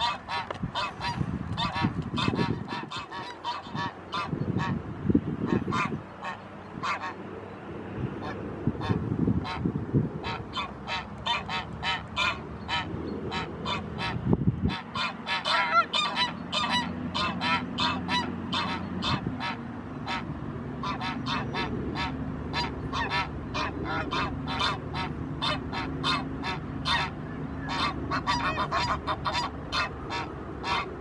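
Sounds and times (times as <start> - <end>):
geese honking: 0.0 - 4.8, 5.4 - 7.2, 8.2 - 31.0.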